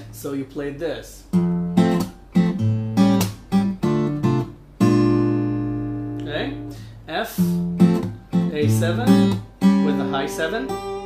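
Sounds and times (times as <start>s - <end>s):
acoustic guitar fingerpicked chords: 0.0s - 11.0s.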